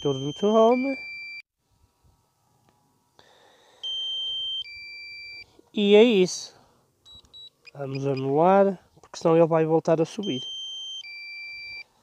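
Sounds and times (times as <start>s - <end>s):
electronic alert beeps: 0.0s - 1.4s, 10.2s - 11.8s.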